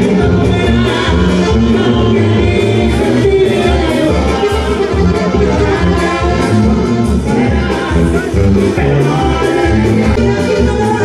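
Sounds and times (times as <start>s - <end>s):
brass band music: 0.0s - 11.0s.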